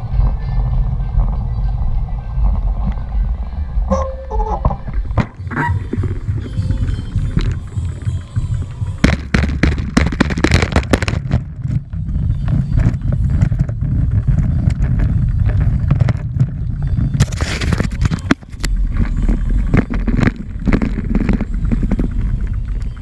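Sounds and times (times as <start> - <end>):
bicycle rolling over brick paving: 0.0 - 23.0
wind rumbling on microphone: 0.0 - 23.0.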